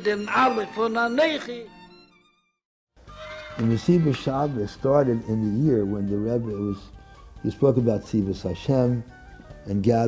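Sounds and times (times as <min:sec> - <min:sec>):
man's voice: 0:03.6 - 0:06.8.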